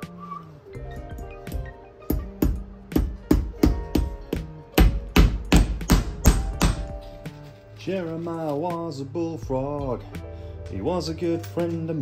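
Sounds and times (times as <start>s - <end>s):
background music: 0.0s - 12.0s
hammer striking nails: 2.1s - 7.0s.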